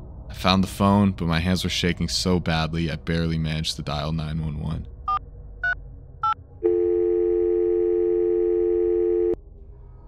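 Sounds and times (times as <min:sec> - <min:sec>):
two-note telephone ringing tone: 0:06.2 - 0:09.4.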